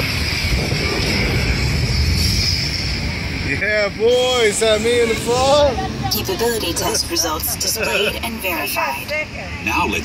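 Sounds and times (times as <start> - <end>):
ride vehicle rumbling on track: 0.0 - 10.0.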